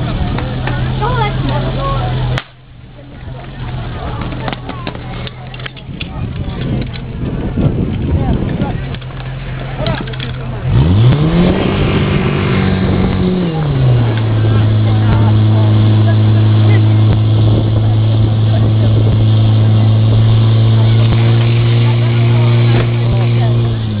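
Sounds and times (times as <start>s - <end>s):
fire pump engine running: 0.0s - 24.0s.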